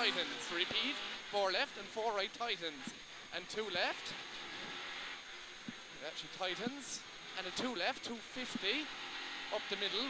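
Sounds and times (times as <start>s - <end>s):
car engine and road noise: 0.0s - 10.0s
faint high whine: 0.0s - 10.0s.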